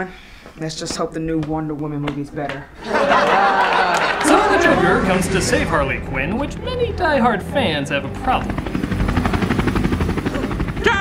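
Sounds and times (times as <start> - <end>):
helicopter rotor blades chopping: 4.1 - 11.0.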